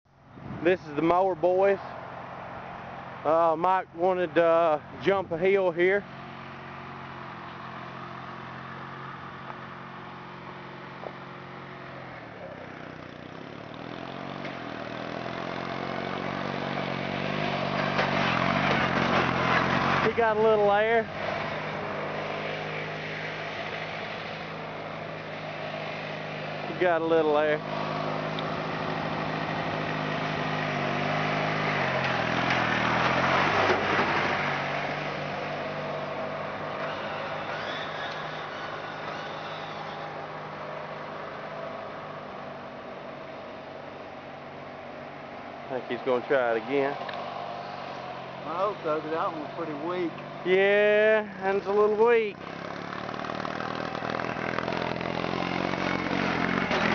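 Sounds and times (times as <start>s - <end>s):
riding lawn mower engine: 0.1s - 56.9s.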